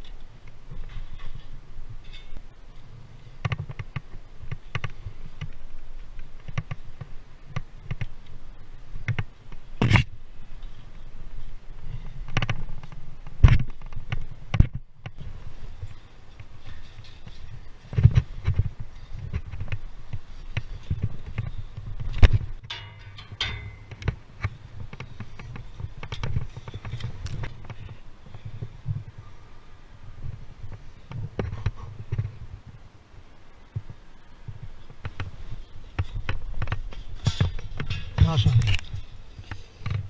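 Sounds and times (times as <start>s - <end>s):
wind buffeting microphone: 0.0s - 40.0s.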